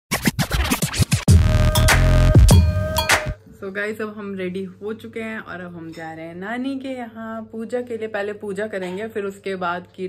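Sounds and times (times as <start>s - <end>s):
record scratches: 0.1s - 2.2s
electronic music with heavy bass: 0.1s - 3.4s.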